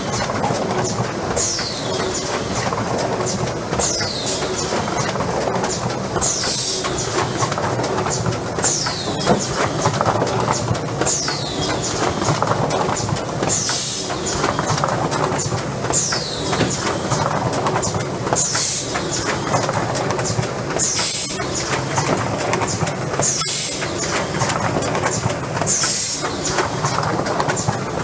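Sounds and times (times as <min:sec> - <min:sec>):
machine clatter with rapid clicking: 0:00.0 - 0:28.0.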